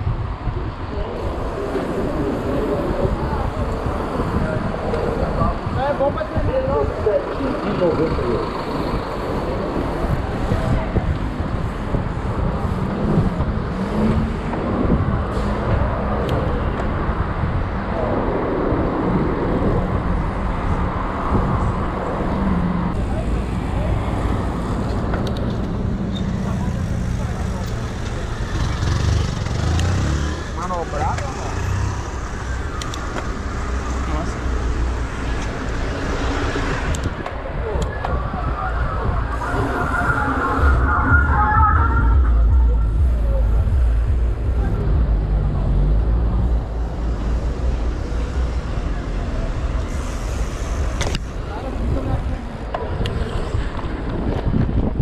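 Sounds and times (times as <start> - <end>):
traffic engine and road noise: 0.0 - 55.0
voices: 22.9 - 54.1.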